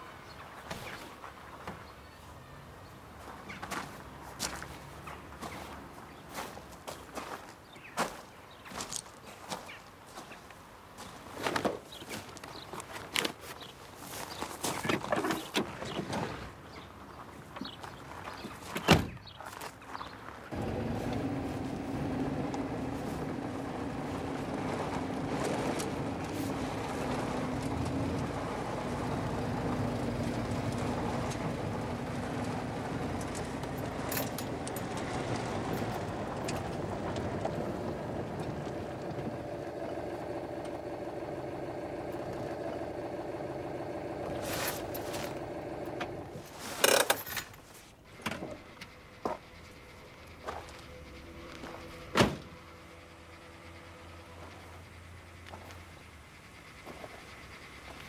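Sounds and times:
car engine running: 20.5 - 46.5, 48.4 - 58.0.

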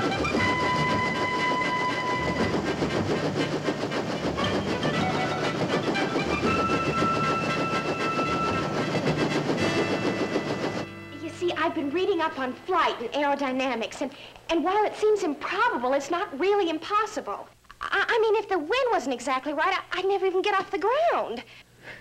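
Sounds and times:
held high tones: 0.0 - 12.0
helicopter rotor chopping: 0.0 - 13.8.

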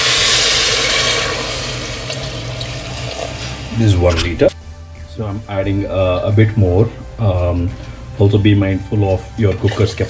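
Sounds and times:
water hissing into hot pot: 0.0 - 4.6.

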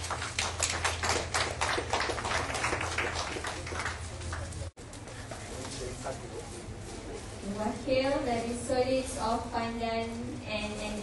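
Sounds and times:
hands clapping: 0.0 - 4.7.

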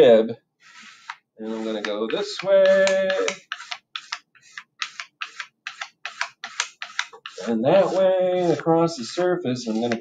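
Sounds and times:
rib scraping clay: 0.6 - 10.0.

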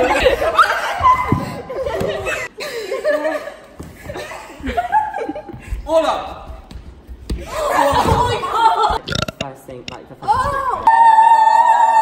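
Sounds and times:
people laughing: 0.0 - 5.8, 7.5 - 9.1.

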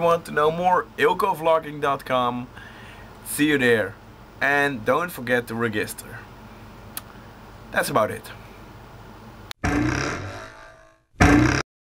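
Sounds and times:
loud tone-rich outro sound effect: 9.6 - 11.6.

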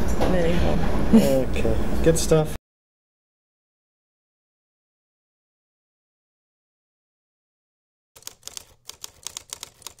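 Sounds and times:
typewriter keys clacking: 8.2 - 10.0.

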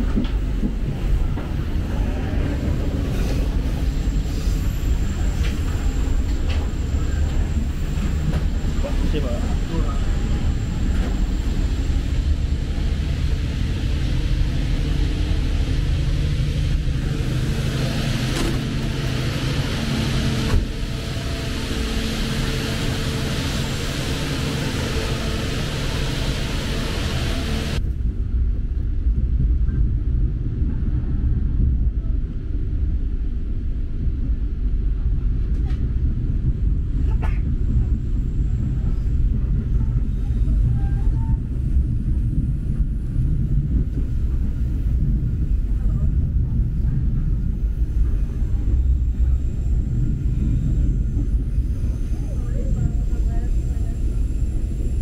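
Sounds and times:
train coach rumbling on rails: 0.0 - 55.0
train hissing noise: 2.0 - 27.8.

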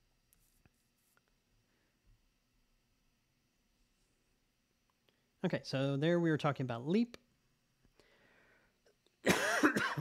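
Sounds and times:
man coughing: 9.2 - 10.0.

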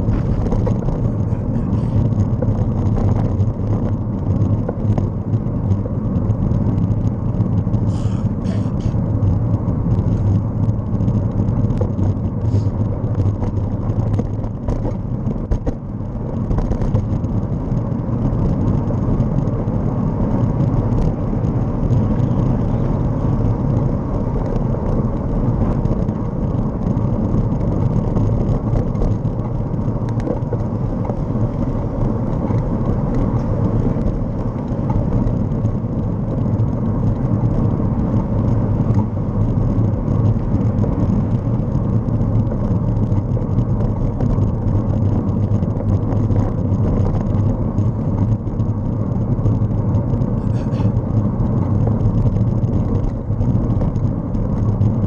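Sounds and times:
road noise: 0.0 - 55.0
wind rumble on microphone: 0.0 - 55.0.

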